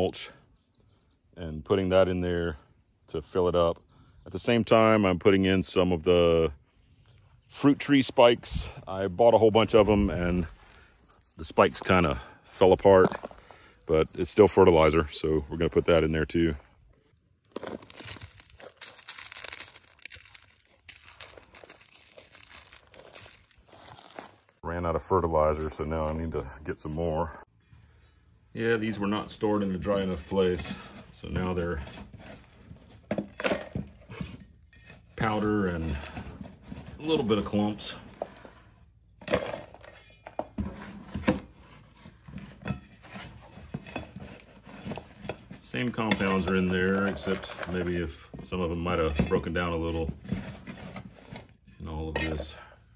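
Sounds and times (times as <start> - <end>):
granules landing on dry leaves: 17.5 - 24.6
metal scoop scraping in cardboard box: 28.8 - 48.2, 48.8 - 52.4.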